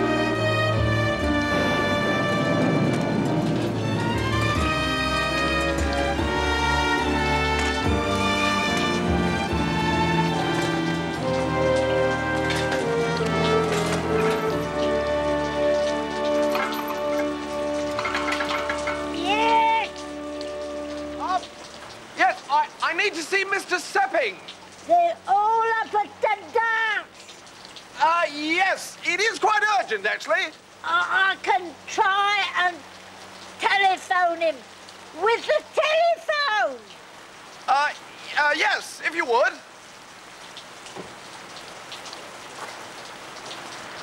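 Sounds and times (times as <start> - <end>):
music of long held notes: 0.0 - 22.1
rain falling on gravel: 0.0 - 44.0
person calling out: 19.1 - 20.0, 21.2 - 21.5, 24.9 - 27.2, 30.8 - 32.9.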